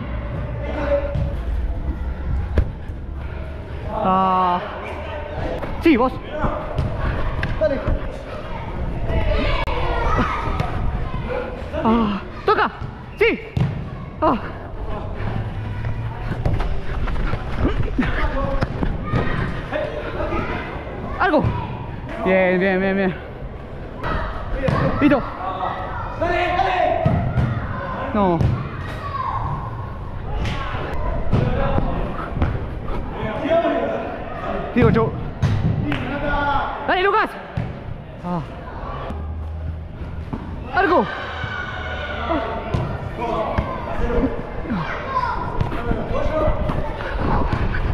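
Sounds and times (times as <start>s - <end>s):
football being struck: 13.5s - 13.9s
players shouting: 40.6s - 47.9s.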